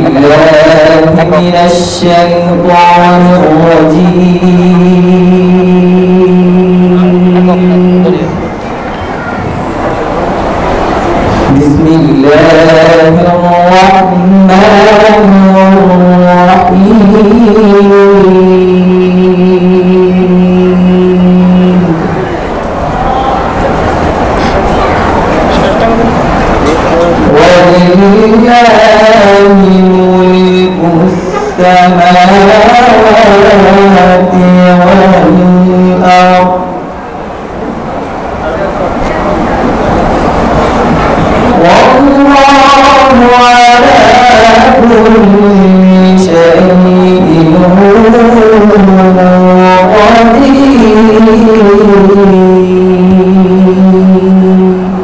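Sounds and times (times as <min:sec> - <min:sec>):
man chanting a long note: 0:00.0 - 0:08.5, 0:11.4 - 0:23.8, 0:24.4 - 0:37.0, 0:41.3 - 0:55.0
young man reciting melodically: 0:00.0 - 0:08.6, 0:11.3 - 0:37.0, 0:38.4 - 0:55.0
steady background noise: 0:00.0 - 0:55.0.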